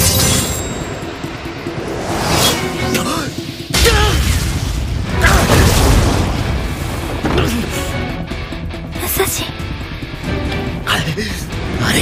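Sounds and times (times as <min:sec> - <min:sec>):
music: 0:00.0 - 0:12.0
rumbling battle boom: 0:03.6 - 0:07.2.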